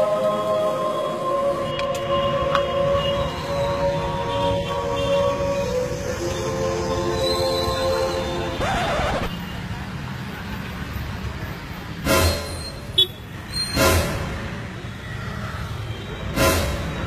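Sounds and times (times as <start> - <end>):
traffic engine rumble: 0.0 - 17.0.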